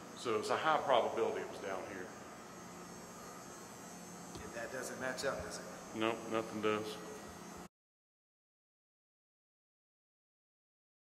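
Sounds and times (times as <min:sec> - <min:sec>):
faint background hum: 0:00.0 - 0:07.7.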